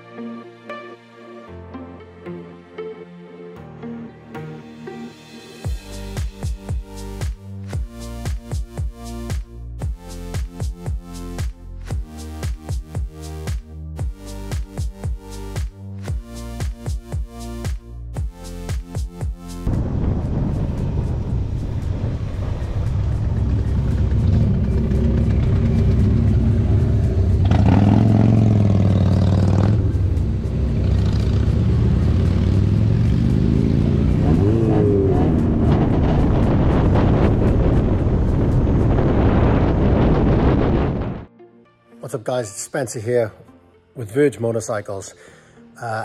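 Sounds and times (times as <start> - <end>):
wind and tyre rush: 19.7 - 41.3.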